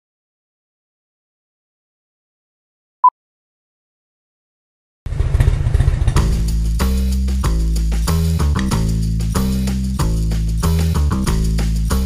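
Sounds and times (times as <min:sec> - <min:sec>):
motorcycle engine rumble: 0:05.1 - 0:09.4
music with heavy bass and beat: 0:06.2 - 0:12.0.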